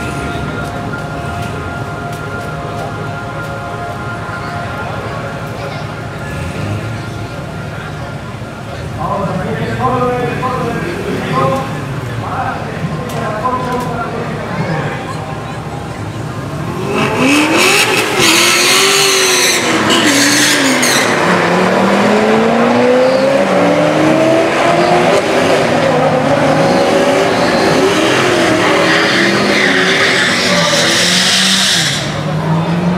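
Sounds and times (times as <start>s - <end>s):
car engines revving: 0.0s - 32.9s
tyre squeal: 26.5s - 32.3s.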